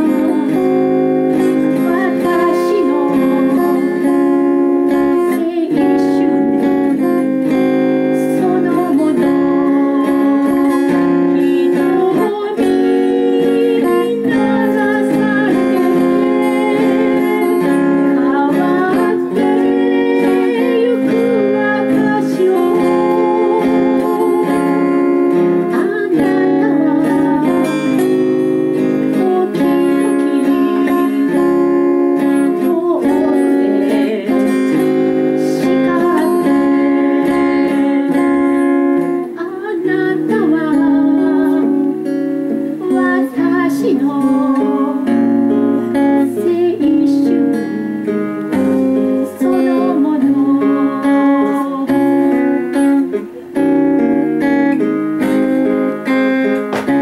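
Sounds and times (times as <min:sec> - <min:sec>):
acoustic guitar strumming: 0:00.0 - 0:57.0
woman singing: 0:00.0 - 0:57.0.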